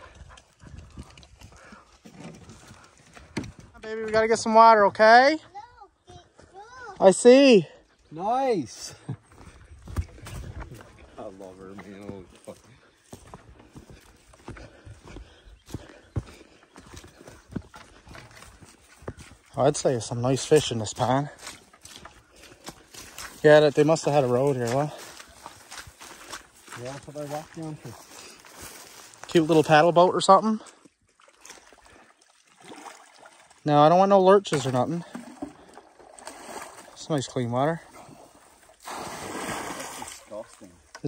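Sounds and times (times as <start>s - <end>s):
footsteps on dirt trail: 0.0s - 4.1s, 5.4s - 7.1s, 8.9s - 29.9s
boots sloshing in water: 9.4s - 29.5s, 30.5s - 33.8s, 34.4s - 40.9s
dry vegetation crackling: 20.3s - 29.8s
soft splashes: 30.6s - 33.7s, 34.4s - 40.8s.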